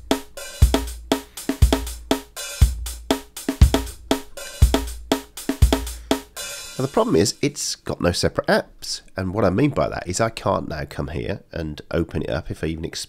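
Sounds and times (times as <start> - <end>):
programmed drum beat: 0.0 - 7.6.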